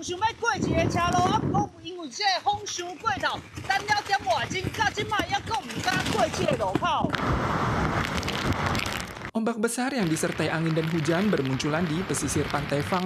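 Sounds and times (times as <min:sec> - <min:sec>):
strong wind: 0:00.0 - 0:09.3
rain: 0:07.1 - 0:09.3, 0:10.0 - 0:13.0
reporter talking: 0:09.4 - 0:13.0.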